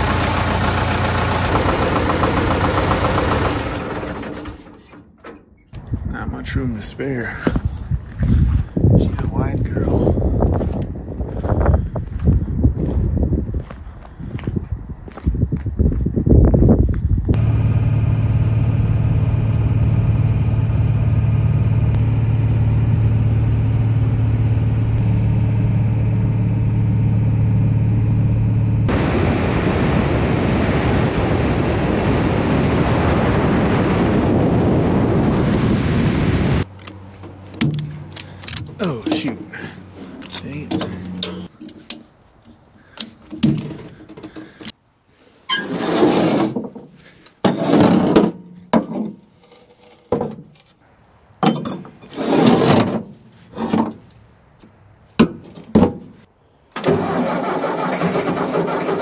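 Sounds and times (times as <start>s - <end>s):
diesel engine droning: 0.0s - 5.9s, 17.4s - 41.6s
wind and road noise: 0.0s - 59.0s
clanks of straps and hardware: 36.7s - 44.8s, 51.4s - 54.2s.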